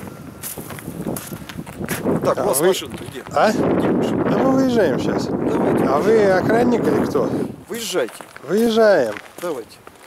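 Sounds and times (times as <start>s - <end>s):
footsteps on packed snow: 0.0s - 3.4s, 7.7s - 10.0s.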